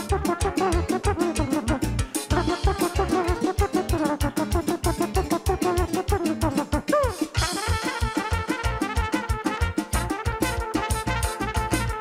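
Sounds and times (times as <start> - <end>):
brass line: 0.0 - 1.7, 2.3 - 5.0, 7.2 - 12.0
live band playing: 0.0 - 12.0
man imitating trumpet with voice: 0.0 - 12.0
trumpet playing: 0.0 - 12.0.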